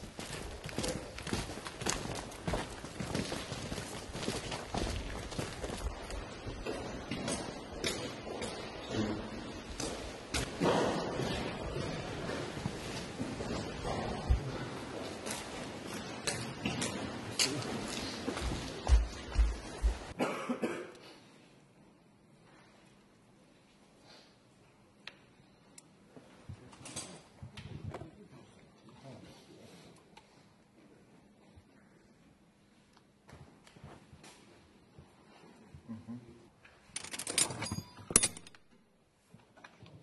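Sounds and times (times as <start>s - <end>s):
person coughing: 20.2s - 21.2s.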